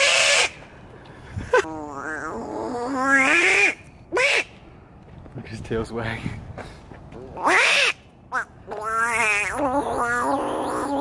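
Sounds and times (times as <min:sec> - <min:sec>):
animal-like vocal call: 0:08.7 - 0:11.0.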